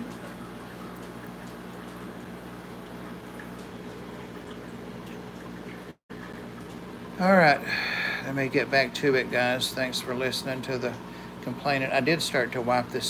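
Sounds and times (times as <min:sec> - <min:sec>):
aquarium filter bubbling: 0:00.0 - 0:13.0
low steady hum: 0:00.0 - 0:13.0.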